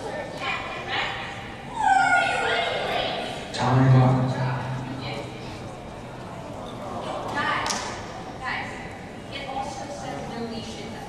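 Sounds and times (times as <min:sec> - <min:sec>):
loud rising cry: 0:01.7 - 0:03.4.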